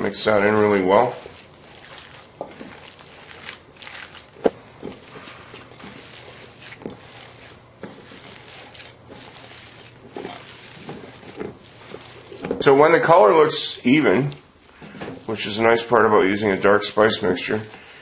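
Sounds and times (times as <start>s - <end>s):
hands kneading ground meat in bowl: 0.0s - 18.0s.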